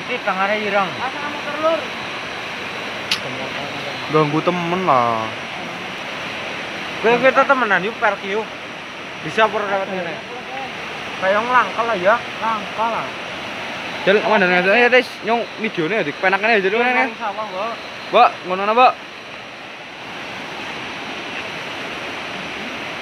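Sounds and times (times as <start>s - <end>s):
men talking: 0.0s - 2.0s, 3.0s - 19.2s
river water rushing: 0.0s - 23.0s.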